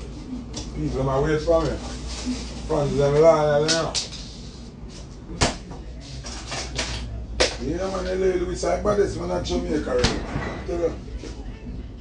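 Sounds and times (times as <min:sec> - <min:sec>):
man talking: 0:07.6 - 0:11.0.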